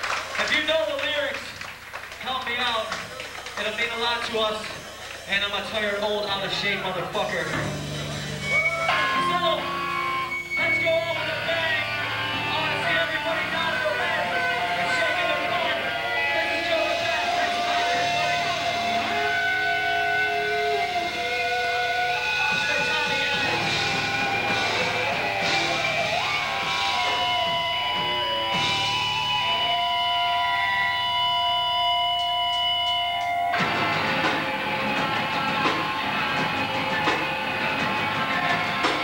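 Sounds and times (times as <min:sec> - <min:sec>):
punk band playing: 0:00.0 - 0:39.0
distorted electric guitar: 0:02.2 - 0:39.0.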